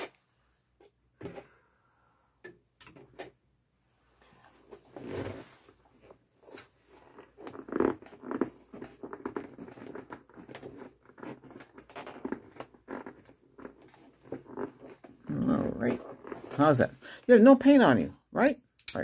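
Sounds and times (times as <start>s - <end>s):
rustling and handling noises: 3.9s - 17.0s.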